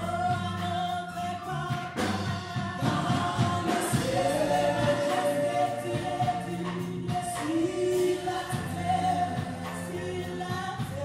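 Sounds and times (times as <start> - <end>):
electronic keyboard: 0.0 - 11.0
group singing gospel song: 0.0 - 11.0.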